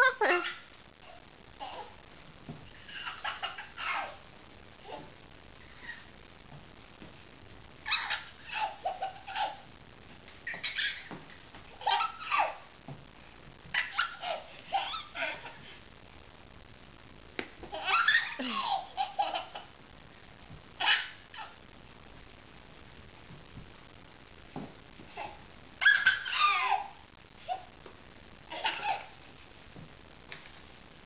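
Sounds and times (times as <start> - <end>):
baby laughing: 2.8 - 4.2, 7.8 - 9.6, 10.5 - 12.6, 13.7 - 15.7, 17.7 - 19.7, 20.8 - 21.6, 25.1 - 27.7, 28.5 - 29.2
high-pitched vocal cry: 17.8 - 18.8.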